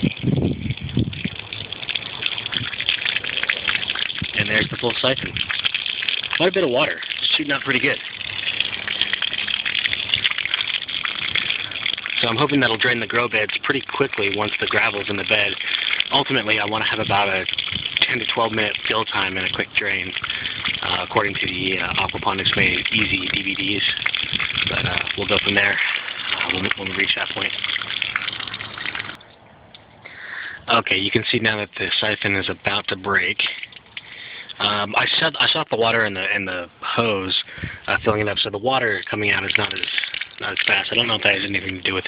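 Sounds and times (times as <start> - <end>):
water gushing onto concrete: 0.0 - 29.2, 30.2 - 42.0.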